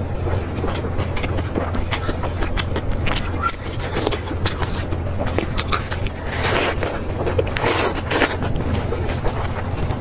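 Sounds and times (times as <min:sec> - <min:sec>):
chewing: 0:00.0 - 0:10.0
lettuce leaves crackling: 0:00.0 - 0:10.0
steady low hum: 0:00.0 - 0:10.0.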